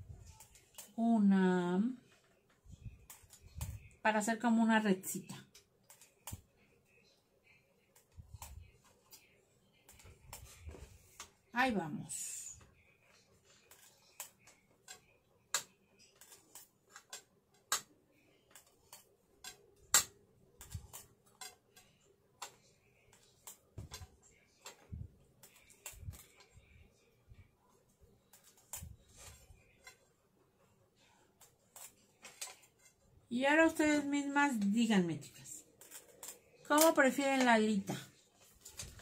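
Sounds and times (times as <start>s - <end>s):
ruler clicking and tapping: 18.5s - 26.5s.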